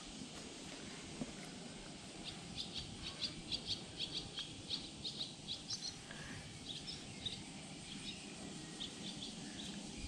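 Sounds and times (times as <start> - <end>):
small bird chirping: 2.2 - 10.0.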